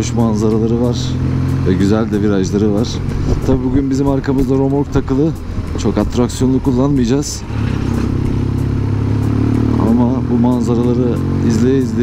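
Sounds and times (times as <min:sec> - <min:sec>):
motorcycle engine running: 0:00.0 - 0:12.0
road and wind noise: 0:00.0 - 0:12.0.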